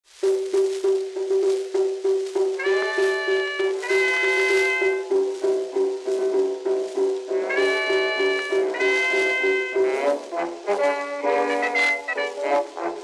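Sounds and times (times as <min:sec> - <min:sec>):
old dance band recording: 0:00.1 - 0:13.0.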